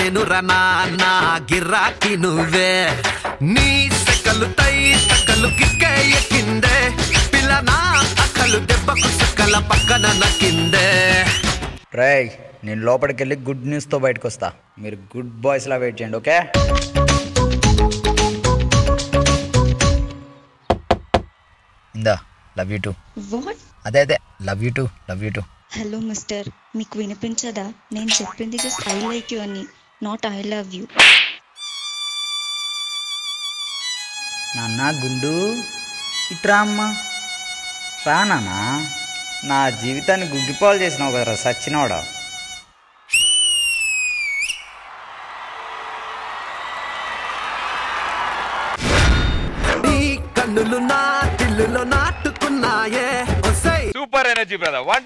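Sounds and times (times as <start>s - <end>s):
music: 0.0s - 11.8s, 16.5s - 20.6s, 32.1s - 42.7s, 49.7s - 54.0s
loud piercing whistle: 4.2s - 6.2s, 7.9s - 11.6s, 31.5s - 34.9s, 43.0s - 44.8s
knocks on a door: 20.7s - 21.3s
applause and cheering: 20.9s - 30.6s, 42.7s - 48.8s, 49.7s - 55.0s.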